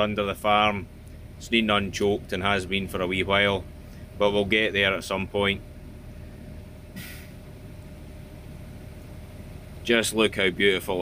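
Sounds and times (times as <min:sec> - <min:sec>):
low mechanical hum: 0:00.0 - 0:11.0
short hiss: 0:06.9 - 0:07.4.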